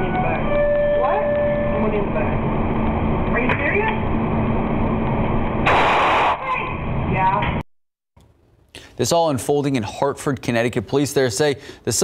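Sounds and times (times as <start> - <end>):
rough background rumble and hum: 0.0 - 7.6
harsh burst of noise: 4.0 - 7.3.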